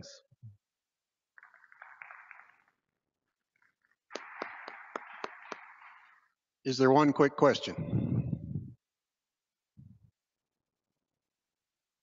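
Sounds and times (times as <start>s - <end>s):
audience applauding: 1.4s - 2.9s, 3.5s - 6.4s.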